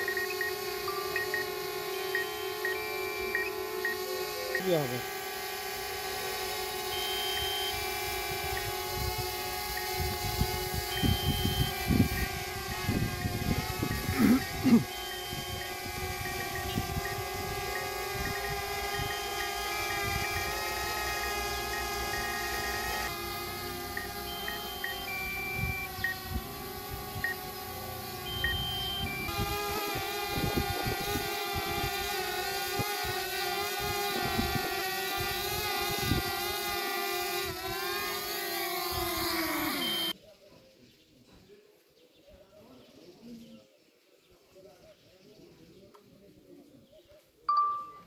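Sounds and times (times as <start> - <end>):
toy drone motors whirring: 0.0 - 40.2.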